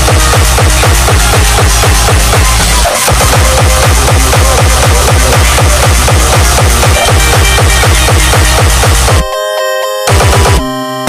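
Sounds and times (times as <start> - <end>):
kick-drum beat: 0.0 - 9.3, 10.1 - 10.7
stuttering synth notes: 0.0 - 11.0.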